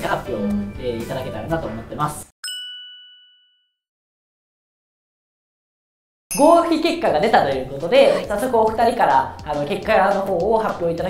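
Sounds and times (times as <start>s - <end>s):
bright chime ringing: 2.4s - 3.8s, 6.3s - 7.2s.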